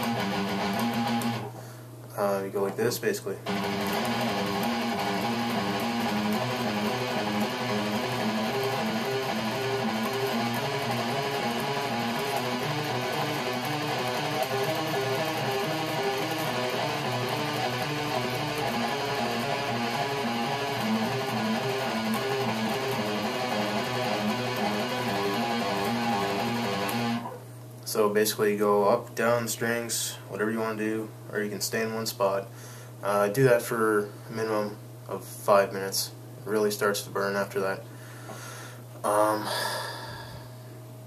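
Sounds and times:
electric guitar picked fast: 0.0 - 1.5, 3.5 - 27.4.

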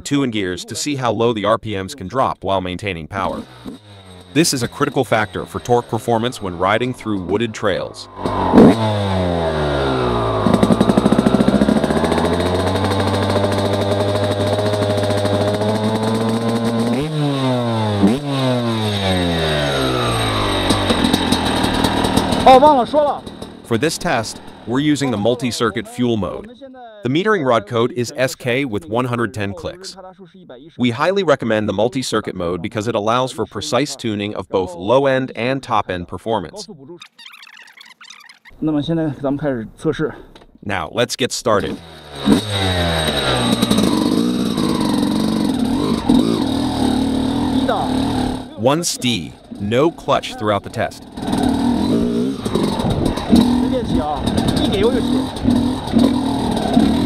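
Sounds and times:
man speaking: 0.0 - 3.4, 4.4 - 8.2, 23.7 - 37.1, 38.6 - 41.8, 47.6 - 51.0, 53.6 - 55.2
dirt bike engine revving: 3.1 - 26.5, 41.5 - 57.0.

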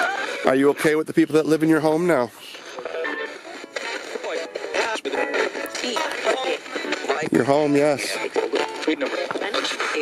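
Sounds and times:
radio static: 0.0 - 10.0.

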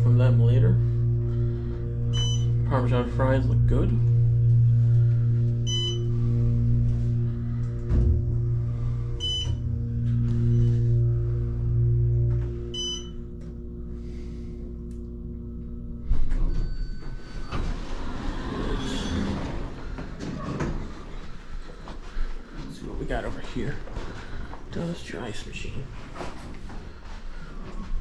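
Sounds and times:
elevator drive hum: 0.0 - 27.8
chime tone: 2.1 - 2.6
short beeps: 2.1 - 2.6, 5.6 - 6.1, 9.2 - 9.7, 12.7 - 13.2
elevator doors sliding open: 16.1 - 21.2.

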